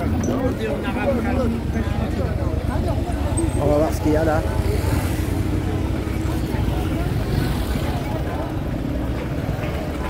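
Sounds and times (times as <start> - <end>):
traffic and scooters humming: 0.0 - 10.0.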